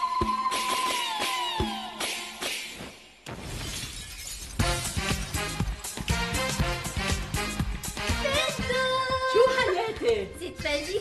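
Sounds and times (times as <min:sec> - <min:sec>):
noisy crash: 0:02.8 - 0:05.4.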